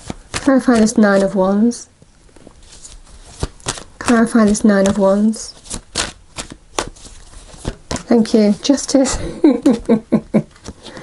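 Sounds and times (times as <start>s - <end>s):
soft card rustling: 0.0s - 9.0s.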